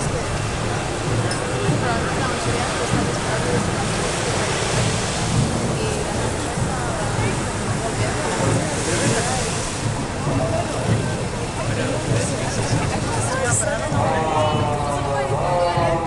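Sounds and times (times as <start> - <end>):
car traffic: 0.0 - 16.0
murmur of crowds talking: 0.0 - 16.0.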